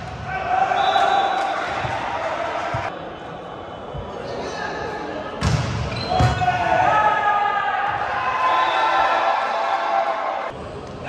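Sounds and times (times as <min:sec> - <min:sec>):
players shouting: 0:00.0 - 0:03.0, 0:05.9 - 0:10.5.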